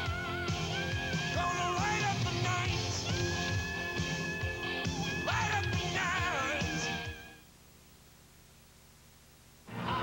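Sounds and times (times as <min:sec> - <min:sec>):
faint low hum: 0:07.2 - 0:10.0.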